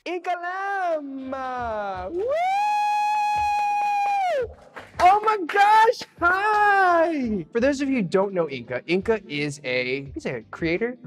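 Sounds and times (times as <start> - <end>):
person cheering woo: 1.9 - 7.2
hand claps: 2.0 - 2.4, 3.2 - 7.0.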